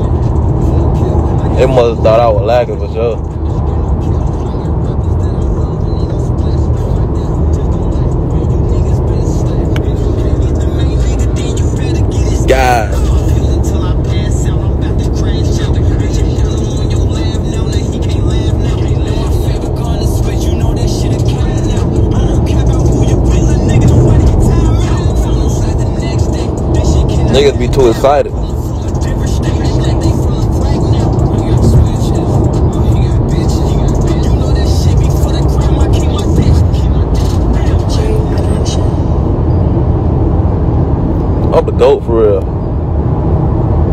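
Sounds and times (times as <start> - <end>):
music with vocals and heavy bass: 0.0 - 42.5
car rumble: 0.0 - 43.9.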